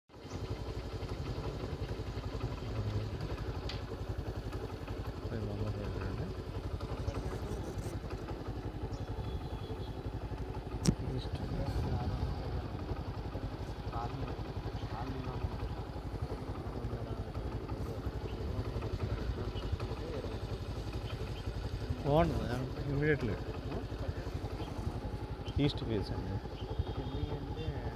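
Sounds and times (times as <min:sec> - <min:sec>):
small engine idling: 0:00.1 - 0:27.9.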